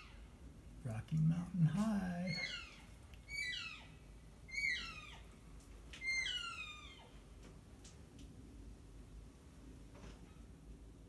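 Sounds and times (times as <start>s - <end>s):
elk squealing mews: 2.3s - 5.3s, 6.0s - 7.1s.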